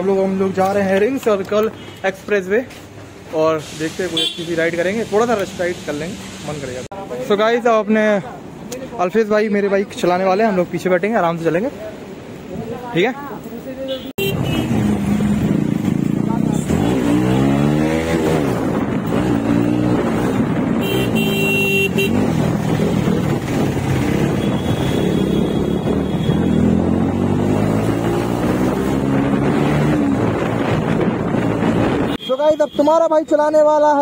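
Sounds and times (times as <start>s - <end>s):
vehicle horn: 13.9s - 14.8s, 20.8s - 22.3s, 24.3s - 26.8s
motorcycle engine revving: 14.2s - 32.1s.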